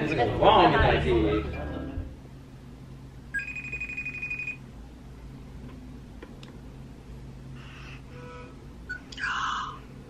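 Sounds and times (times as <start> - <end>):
faint low hum: 0.0 - 10.0
phone call tone: 3.4 - 4.6.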